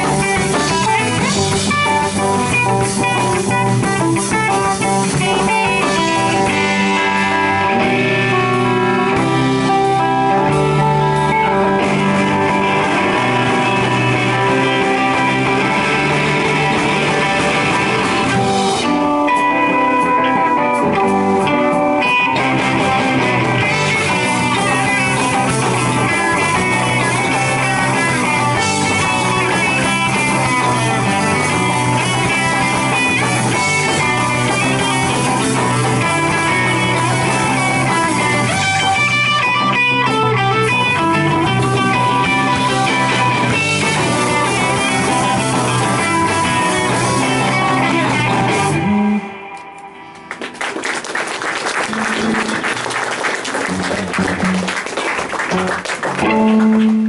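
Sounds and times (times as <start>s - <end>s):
live rock band playing: 0.0s - 57.0s.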